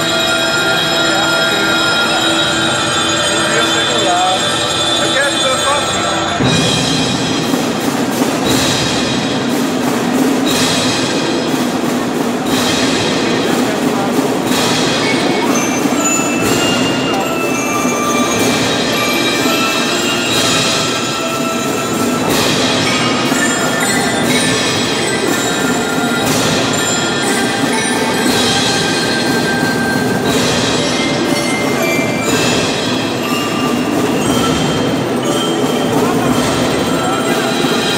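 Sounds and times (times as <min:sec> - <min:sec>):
drums: 0:00.0 - 0:37.9
marimba ringing: 0:00.0 - 0:37.9.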